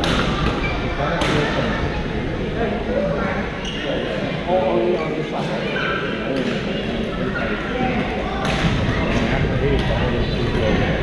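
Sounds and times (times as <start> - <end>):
voices echoing in gym hall: 0.0 - 11.0.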